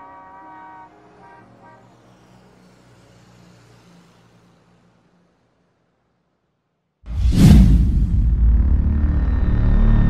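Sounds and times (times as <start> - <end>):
vehicle horns honking: 0.0 - 2.0.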